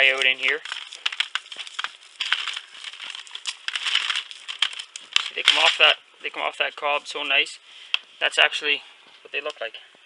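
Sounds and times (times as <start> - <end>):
corn kernels crackling onto paper: 0.0 - 8.4.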